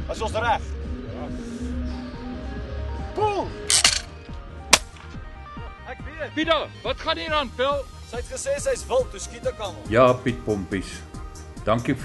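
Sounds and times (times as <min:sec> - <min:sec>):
background music: 0:00.0 - 0:12.0
clay pigeon trap clacking: 0:03.7 - 0:04.1
shotgun shot: 0:04.7 - 0:05.1.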